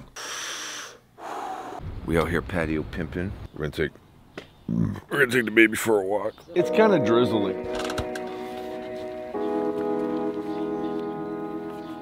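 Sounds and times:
man breathing out hard: 0.2 - 1.8.

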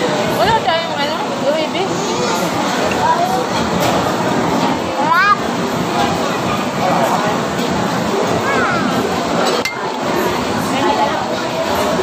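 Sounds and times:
restaurant chatter: 0.0 - 12.0
tableware clink: 9.4 - 10.0.

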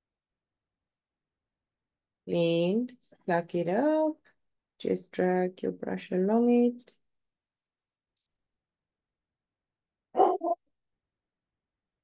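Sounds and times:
dog barking: 10.2 - 10.6.

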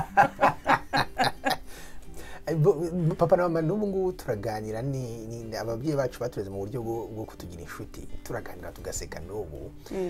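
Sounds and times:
man laughing heartily: 0.0 - 1.8.

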